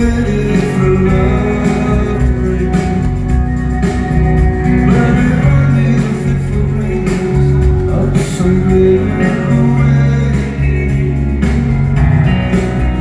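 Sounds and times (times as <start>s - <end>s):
man singing: 0.0s - 3.7s, 4.5s - 13.0s
live rock band playing: 0.0s - 13.0s.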